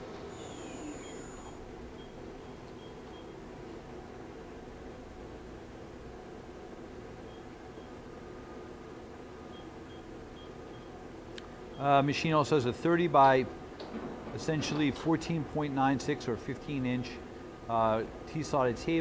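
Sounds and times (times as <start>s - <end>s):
machine spindle humming: 0.0s - 3.4s.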